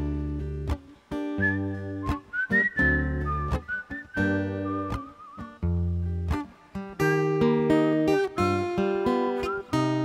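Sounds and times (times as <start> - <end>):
acoustic guitar strumming: 0.0 - 10.0
whistled melody: 1.4 - 5.7, 8.3 - 10.0.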